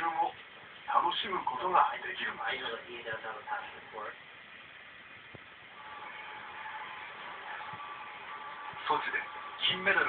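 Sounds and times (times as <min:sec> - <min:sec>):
soft television music: 0:00.0 - 0:10.0
steady hiss: 0:00.0 - 0:10.0.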